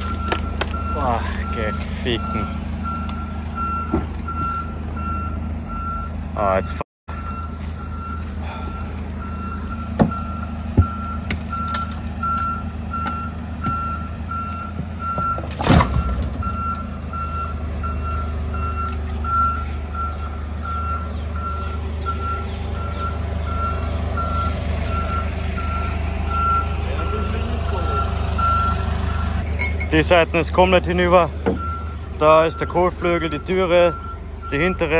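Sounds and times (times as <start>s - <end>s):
reversing alarm beeping: 0.0s - 30.0s, 31.5s - 34.9s
forklift engine idling: 0.0s - 34.9s.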